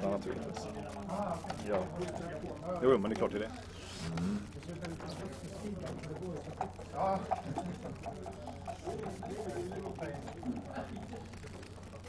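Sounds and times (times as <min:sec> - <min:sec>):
background conversation: 0:00.0 - 0:12.0
steady low hum: 0:00.0 - 0:12.0.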